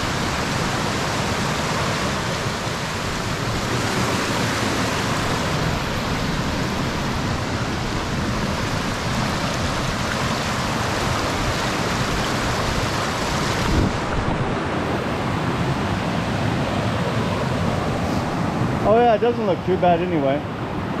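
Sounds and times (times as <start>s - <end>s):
creek rushing over rock: 0.0s - 20.4s.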